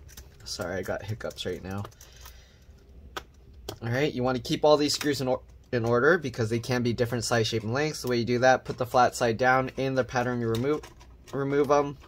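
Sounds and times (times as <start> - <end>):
man speaking: 0.4 - 1.9, 3.7 - 12.0.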